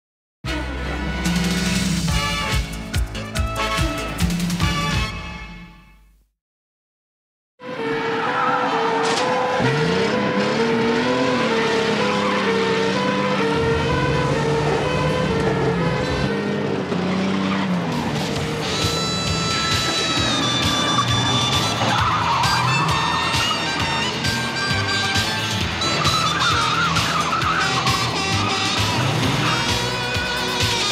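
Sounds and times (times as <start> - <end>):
car engines revving: 7.6 - 30.9
tyres squealing: 8.0 - 30.9.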